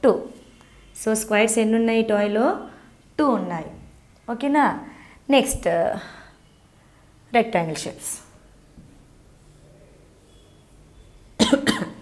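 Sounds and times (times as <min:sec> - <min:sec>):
woman coughing: 0:11.4 - 0:12.0.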